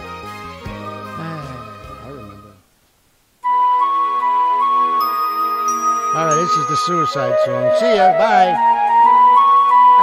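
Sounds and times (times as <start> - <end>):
flute-like lead melody: 3.4 - 10.0.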